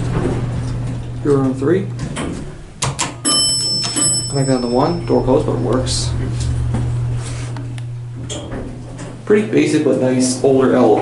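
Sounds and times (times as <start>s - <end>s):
elevator bell ringing: 3.2s - 6.3s.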